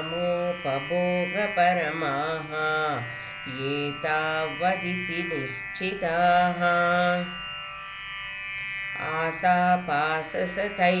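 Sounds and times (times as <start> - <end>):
person chanting: 0.0 - 7.5, 8.9 - 11.0
buzzy drone: 0.0 - 11.0.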